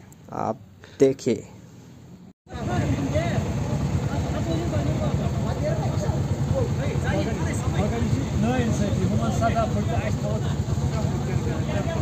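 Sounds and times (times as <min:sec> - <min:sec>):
motorcycle engine running: 0:02.5 - 0:12.0
people's voices in background: 0:02.5 - 0:12.0.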